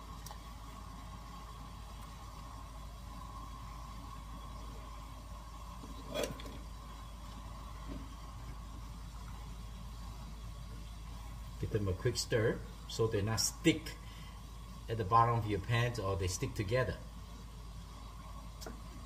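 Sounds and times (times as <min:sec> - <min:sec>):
water boiling rumble: 0:00.0 - 0:19.0.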